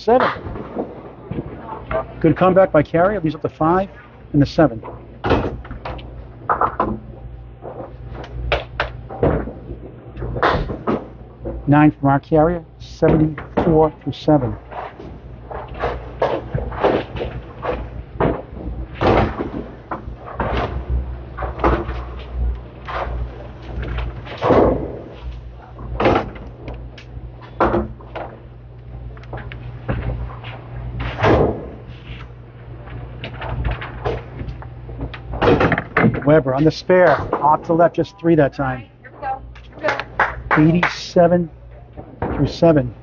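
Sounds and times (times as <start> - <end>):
bowling balls rolling on lanes: 0.0 - 3.2, 3.9 - 11.7, 13.1 - 28.5
steady low hum: 0.0 - 43.0.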